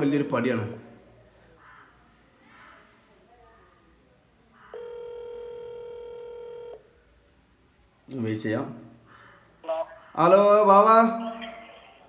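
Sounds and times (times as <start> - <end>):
phone ringback tone: 4.8 - 6.8.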